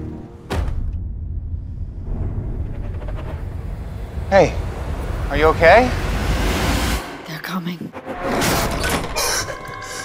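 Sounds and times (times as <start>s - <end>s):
deep rumbling drone: 0.0s - 7.4s.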